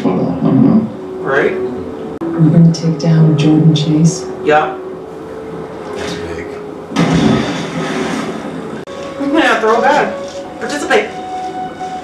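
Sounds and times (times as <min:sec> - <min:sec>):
motorboat engine rumbling: 0:00.0 - 0:08.9.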